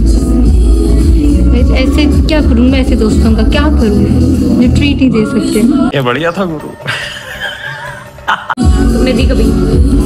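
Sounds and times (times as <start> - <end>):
loud music with heavy bass beat: 8.6 - 10.0.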